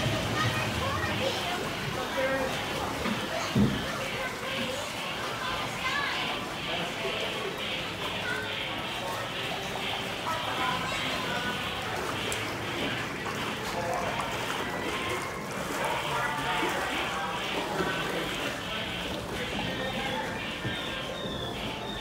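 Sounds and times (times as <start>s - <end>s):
indistinct voices: 0.0s - 22.0s
running water: 0.0s - 22.0s.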